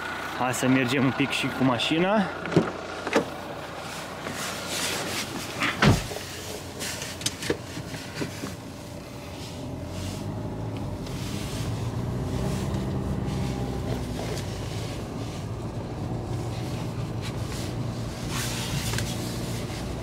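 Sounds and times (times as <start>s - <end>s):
car engine running: 0.0s - 20.0s
car door thump: 5.6s - 6.2s.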